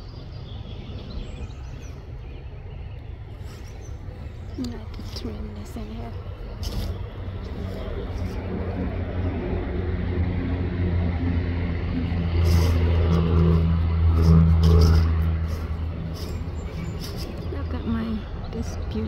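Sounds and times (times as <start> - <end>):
vehicle engine passing: 0.0 - 19.0.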